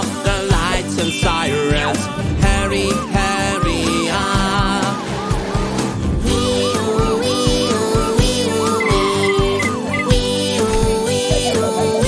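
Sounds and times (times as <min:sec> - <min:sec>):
upbeat children's music: 0:00.0 - 0:12.0.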